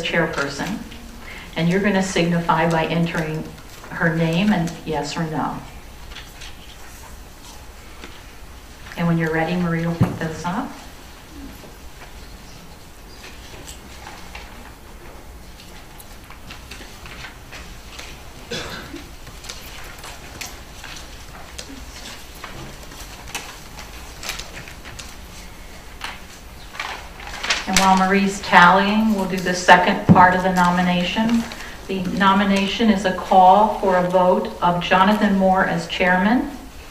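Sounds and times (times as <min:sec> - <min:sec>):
faint rustles and clicks: 0:05.7 - 0:34.5.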